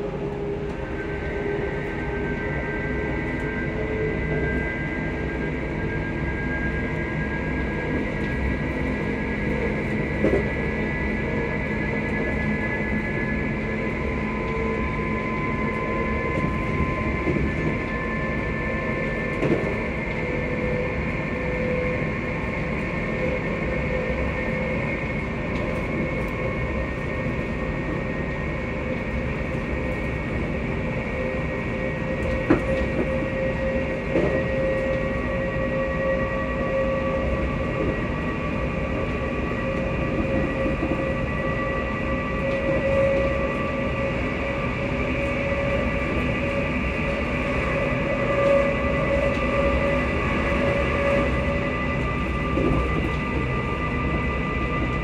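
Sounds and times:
train wheels rumbling: 0.0 - 55.0.

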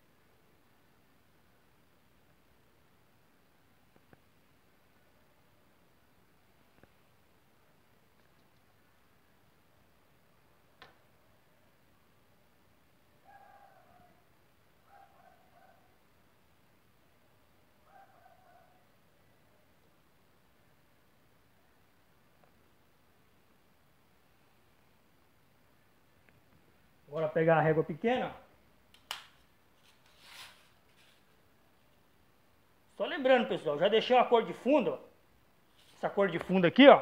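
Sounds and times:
ruler rubbing against wall: 29.8 - 31.4.

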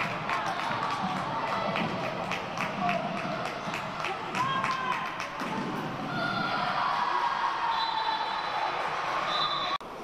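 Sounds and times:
voices echoing in hall: 0.0 - 9.8.

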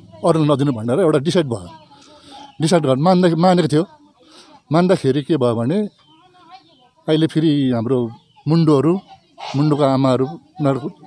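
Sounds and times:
man speaking: 4.7 - 5.9.

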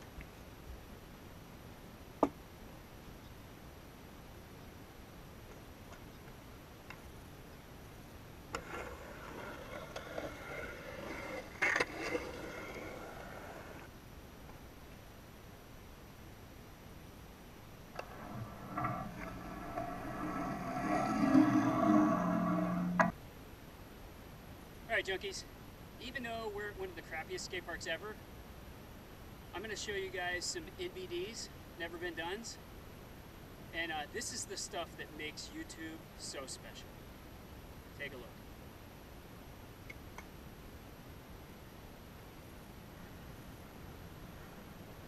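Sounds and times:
skateboard wheels rolling on concrete: 5.3 - 15.1, 17.5 - 23.2
skateboard clack: 8.5 - 13.9
skateboard trucks knocking: 8.5 - 13.9.

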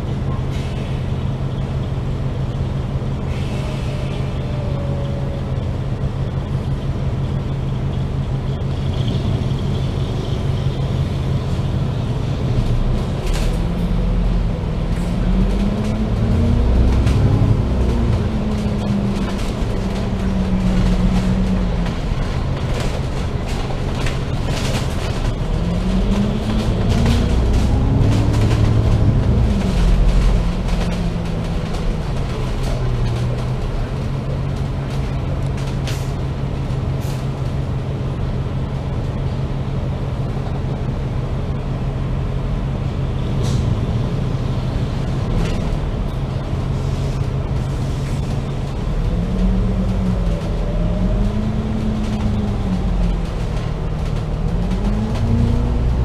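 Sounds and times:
bus diesel engine: 0.0 - 56.0.

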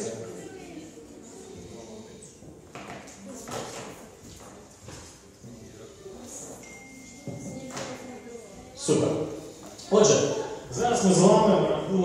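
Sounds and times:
faint murmuring voices: 0.0 - 12.0.

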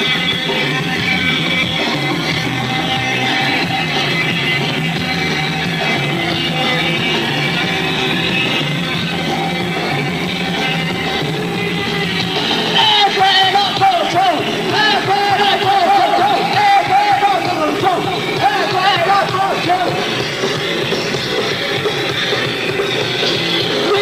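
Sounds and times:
punk band playing live: 0.0 - 24.0.

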